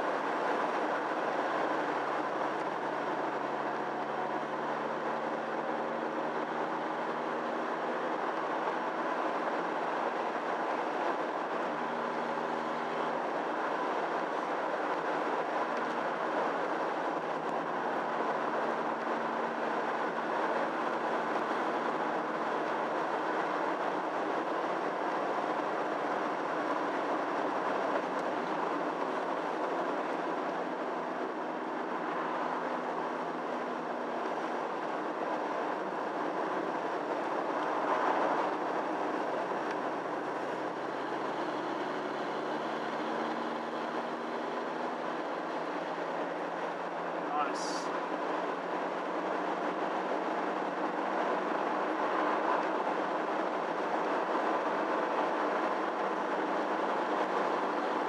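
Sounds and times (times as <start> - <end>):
car engine hum: 0.0 - 58.0
road and tyre noise: 0.0 - 58.0.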